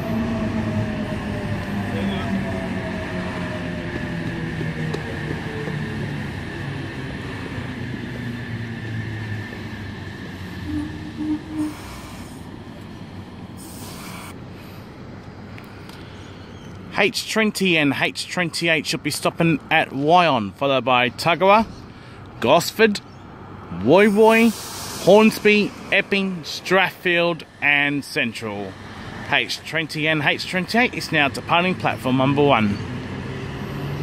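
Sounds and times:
short hisses of air: 13.6s - 14.4s, 24.0s - 25.4s.

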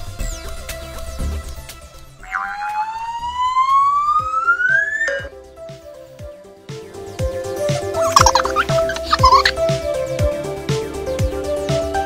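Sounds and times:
background music: 0.0s - 12.0s
rising whistle sound effect: 2.3s - 5.3s.

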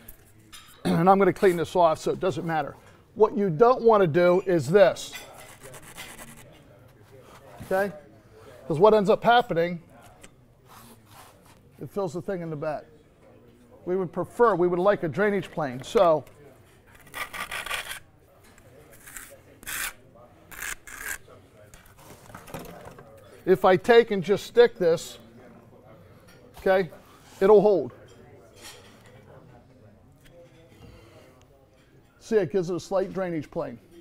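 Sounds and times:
trowel scraping adhesive: 18.9s - 21.2s.

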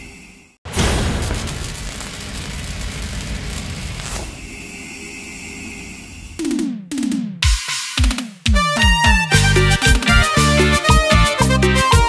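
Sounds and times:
rumbling crackling noise: 0.7s - 4.6s.

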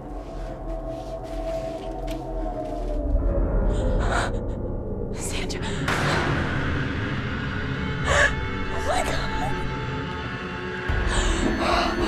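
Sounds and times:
low droning horror score: 0.0s - 12.0s.

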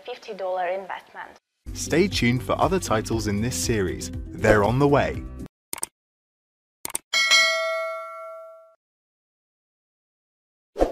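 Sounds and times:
notification bell ding: 7.2s - 8.8s.

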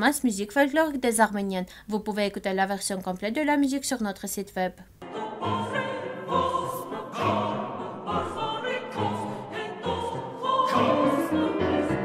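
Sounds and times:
choir singing a folk song: 5.0s - 12.0s.

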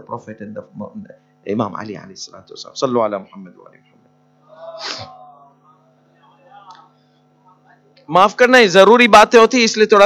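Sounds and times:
person's breathy vocal burst: 4.5s - 5.2s.

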